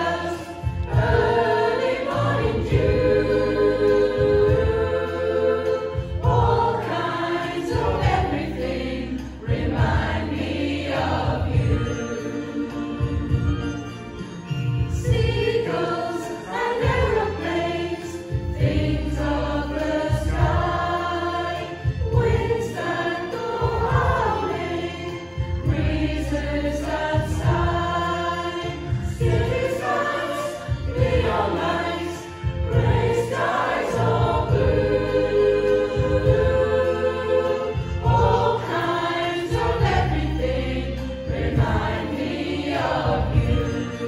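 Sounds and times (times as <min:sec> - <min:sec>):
choir singing slow song: 0:00.0 - 0:44.0
instrumental accompaniment with bass: 0:00.0 - 0:44.0.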